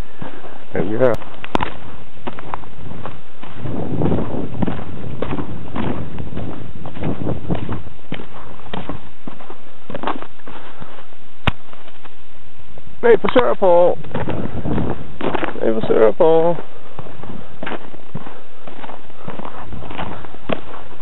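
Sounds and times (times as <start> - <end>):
footsteps crunching through snow: 0.0 - 21.0.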